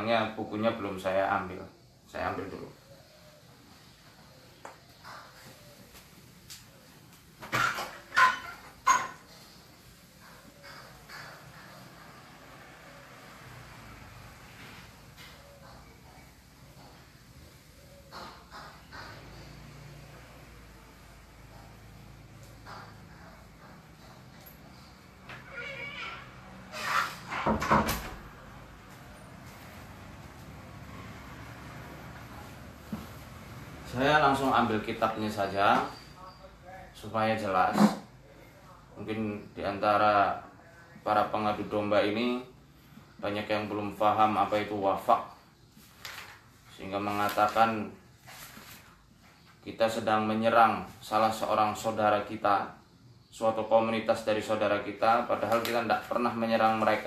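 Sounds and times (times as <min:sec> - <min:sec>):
bumps and scrapes of handling: 0:48.2 - 0:49.4.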